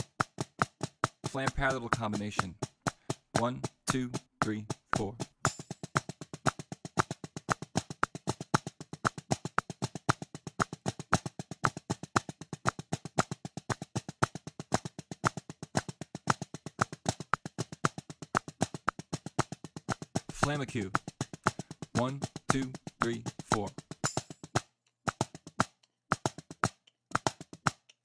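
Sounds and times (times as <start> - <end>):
drumsticks playing rapid strokes: 0.0 - 28.0.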